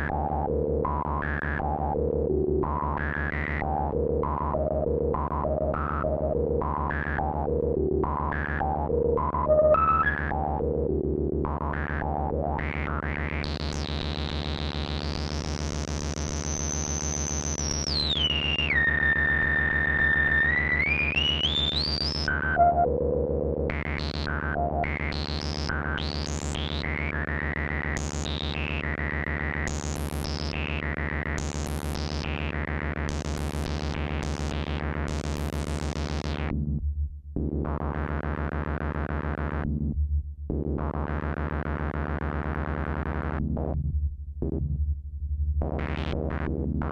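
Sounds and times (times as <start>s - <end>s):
whistling synthesizer filter tone: 9.4s - 10.2s, 16.2s - 22.9s
low synthesizer drone: 15.9s - 24.7s
synthesizer blips of changing pitch: 16.4s - 22.8s.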